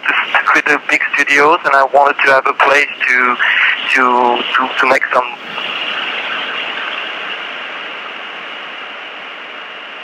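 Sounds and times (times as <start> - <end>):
telephone line hiss: 0.0 - 9.2.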